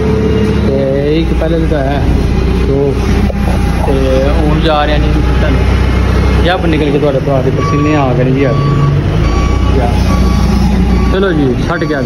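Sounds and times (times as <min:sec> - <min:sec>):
diesel engine rumbling: 0:00.0 - 0:12.0.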